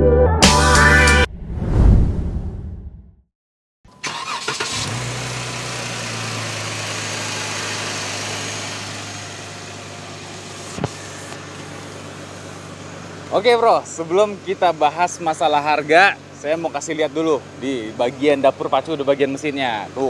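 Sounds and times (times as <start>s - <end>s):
car engine starting and idling: 3.9s - 20.0s.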